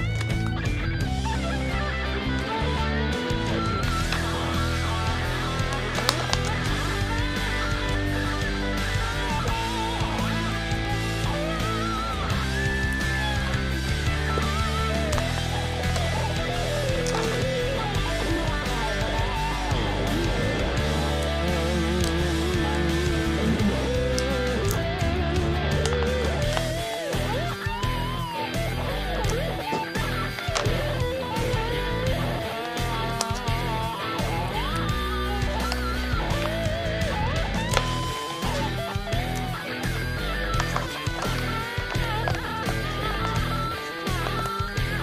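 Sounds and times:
backing track: 0.0 - 45.0
electric guitar solo: 0.0 - 45.0.

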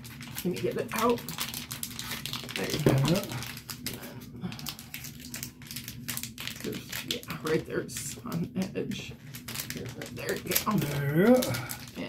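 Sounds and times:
plastic packet crinkling: 0.0 - 12.0.

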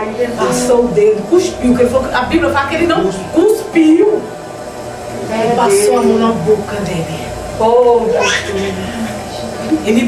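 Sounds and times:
woman preaching: 0.0 - 4.4, 5.3 - 9.0.

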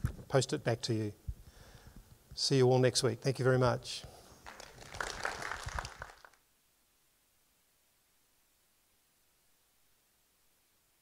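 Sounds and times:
small audience clapping: 4.4 - 6.4.

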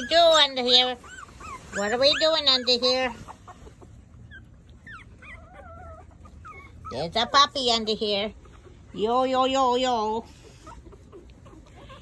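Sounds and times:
puppies whimpering: 0.0 - 12.0.

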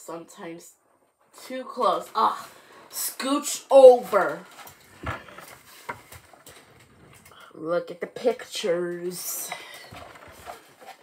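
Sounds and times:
book pages rustling: 3.8 - 7.3, 9.8 - 11.0.

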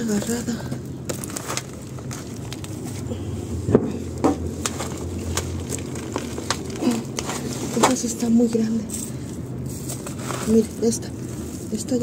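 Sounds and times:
leaves and soil crackling: 0.0 - 3.3, 4.5 - 12.0.

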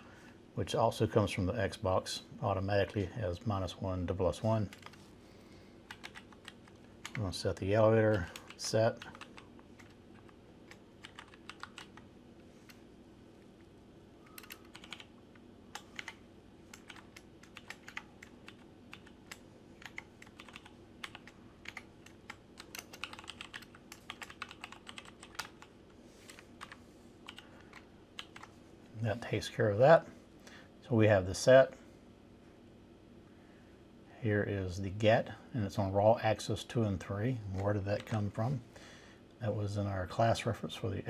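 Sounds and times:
steady low hum: 0.0 - 41.0
keyboard typing: 4.7 - 5.0, 5.8 - 7.3, 8.0 - 12.1, 14.2 - 28.6.

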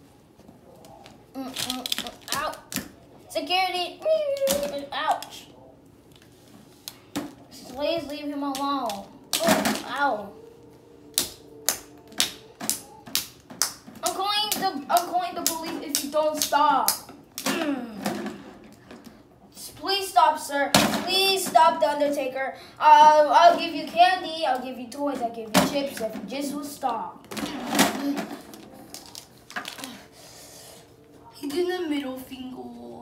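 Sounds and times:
child's voice: 1.3 - 2.7, 3.3 - 5.6, 7.5 - 10.4, 14.0 - 18.0, 19.6 - 27.2, 31.3 - 33.0.

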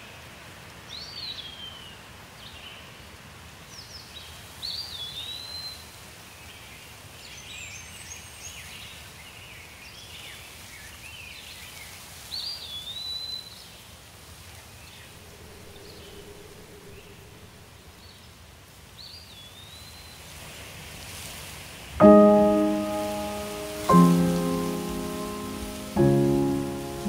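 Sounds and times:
steady low background noise: 14.6 - 19.2, 21.7 - 27.0
birds chirping and twittering: 14.8 - 18.3.

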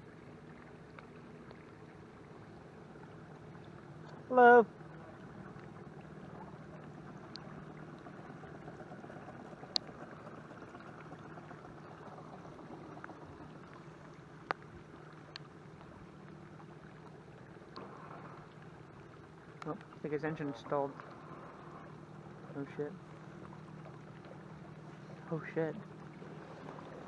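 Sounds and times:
small boat motor humming: 0.0 - 27.0
water washing along a hull: 0.0 - 27.0.

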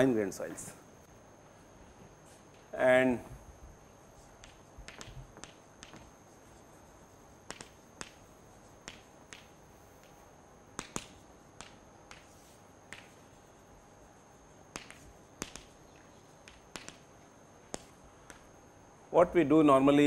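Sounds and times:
chalk tapping on blackboard: 4.1 - 13.6, 14.7 - 17.1, 17.7 - 18.5.

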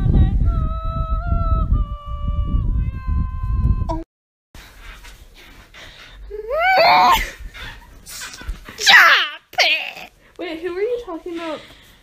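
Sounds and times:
wind rumble on microphone: 0.0 - 4.0.

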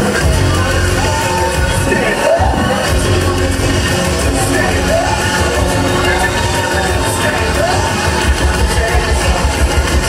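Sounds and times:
heavy sub-bass line: 0.0 - 10.0
loud drum and bass music: 0.0 - 10.0.

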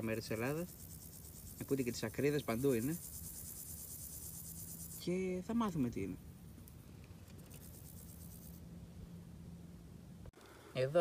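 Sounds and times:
grasshoppers chirping: 0.0 - 8.7.

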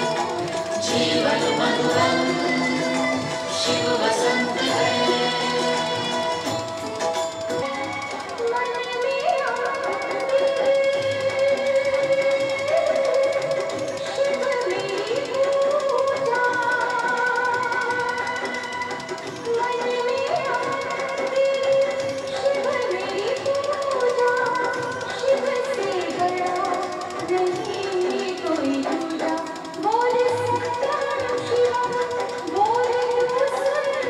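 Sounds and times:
instrumental accompaniment: 0.0 - 34.0
sliding held melody line: 0.0 - 34.0.

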